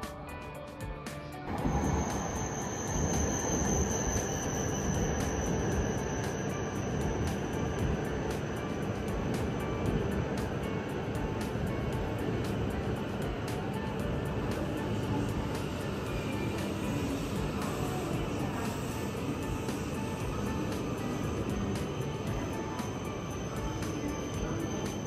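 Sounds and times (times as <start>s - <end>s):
background music with steady beat: 0.0s - 25.0s
high whine: 1.4s - 25.0s
train rushing past: 1.5s - 25.0s.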